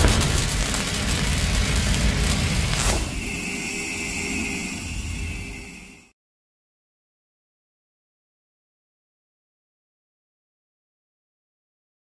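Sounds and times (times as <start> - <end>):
deep impact hit rumble: 0.0 - 3.2
high ringing drone: 0.0 - 6.1.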